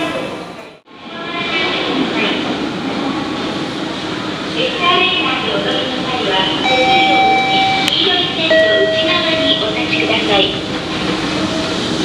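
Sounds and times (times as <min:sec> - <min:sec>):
faint echoing voices: 0:00.0 - 0:11.8.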